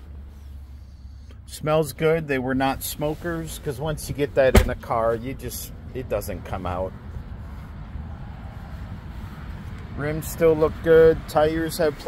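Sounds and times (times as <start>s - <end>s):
faint road traffic: 0.0s - 12.0s.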